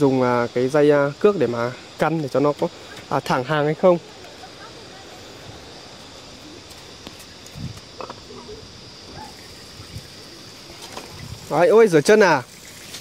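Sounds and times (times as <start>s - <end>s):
high insect chirring: 0.0s - 13.0s.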